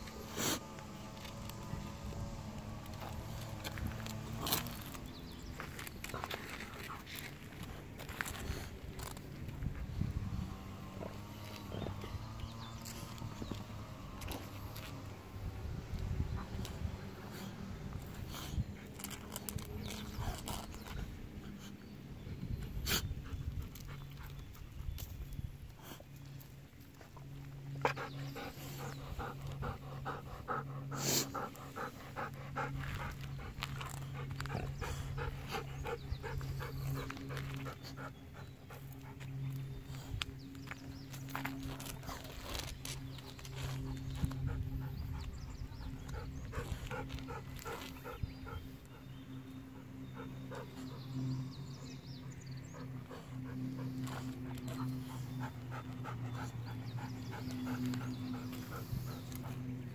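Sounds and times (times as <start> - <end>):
steady low hum: 0.0 - 59.9
dog panting: 27.8 - 59.9.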